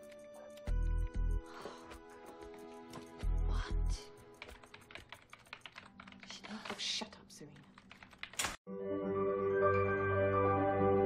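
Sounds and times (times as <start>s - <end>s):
gentle ambient music: 0.0s - 7.0s, 8.7s - 11.0s
soft background music: 0.0s - 7.8s, 8.7s - 11.0s
rapid keyboard typing: 4.2s - 8.6s.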